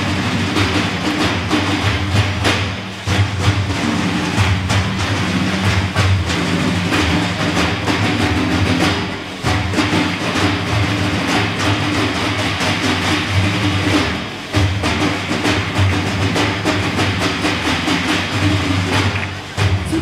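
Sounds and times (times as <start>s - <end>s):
frame drums playing rhythm: 0.0s - 20.0s.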